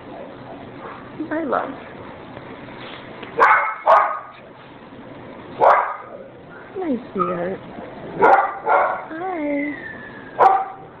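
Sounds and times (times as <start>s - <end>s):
dog barking: 3.4s - 4.4s, 5.6s - 6.2s, 8.2s - 9.1s, 10.4s - 10.9s.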